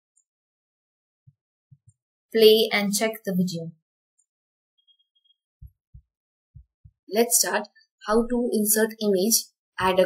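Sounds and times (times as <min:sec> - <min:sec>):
soft low thumps: 0:05.6 - 0:07.1.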